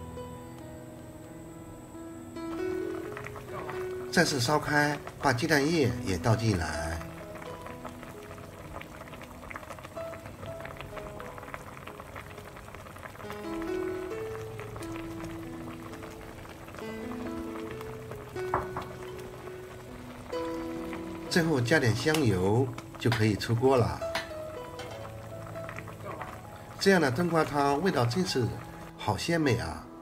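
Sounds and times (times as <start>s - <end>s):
soft background music: 0.0s - 30.0s
soup bubbling in a pot: 2.4s - 29.0s.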